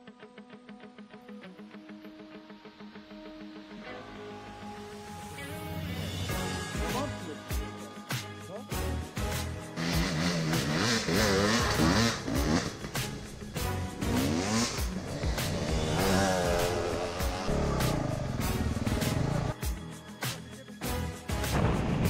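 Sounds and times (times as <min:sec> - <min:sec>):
music track: 0:00.0 - 0:22.0
dirt bike engine revving: 0:09.2 - 0:19.6.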